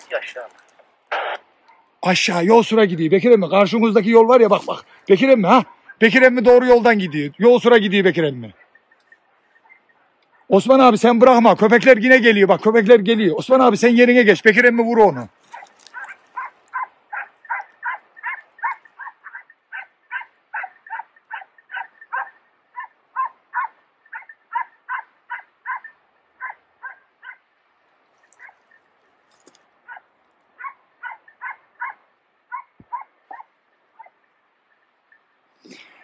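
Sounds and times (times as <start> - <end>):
dogs barking: 1.6 - 2.0, 5.5 - 7.4, 8.5 - 10.7, 15.5 - 27.5, 28.3 - 28.8, 29.8 - 34.2.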